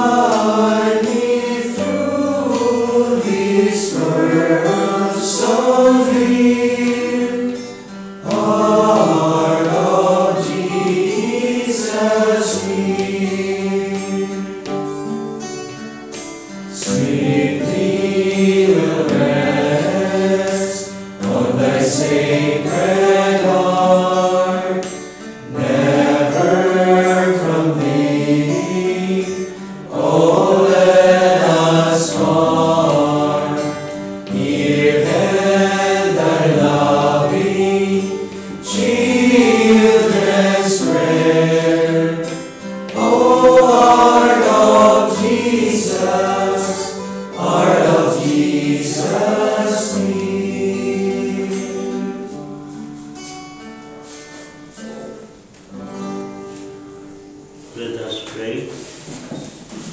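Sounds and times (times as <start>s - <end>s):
voices singing a slow hymn: 0.0s - 58.0s.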